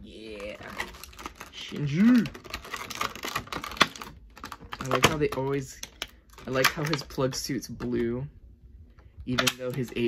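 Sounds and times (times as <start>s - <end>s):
plastic packaging clicking and crinkling: 0.2s - 8.1s, 9.3s - 10.0s.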